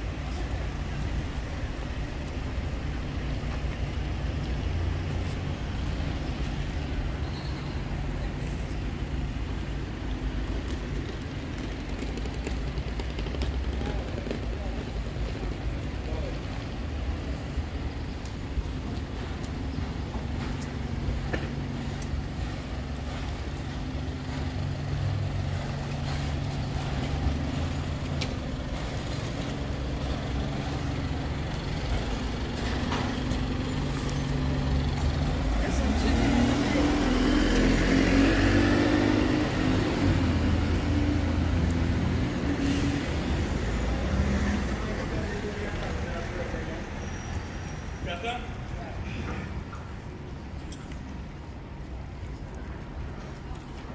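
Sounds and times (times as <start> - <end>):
bus engine running: 0.0 - 47.3
cars passing: 0.0 - 53.9.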